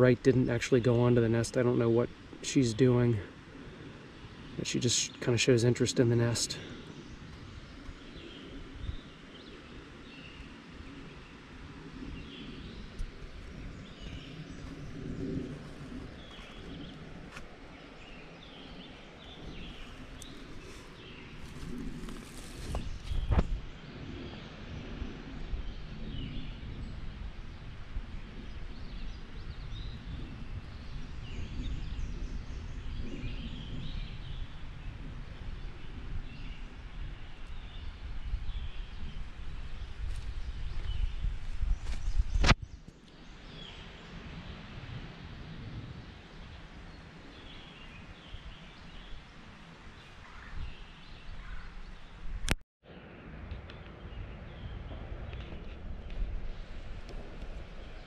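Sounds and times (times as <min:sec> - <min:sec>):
distant birds chirping: 0:00.0 - 0:24.9.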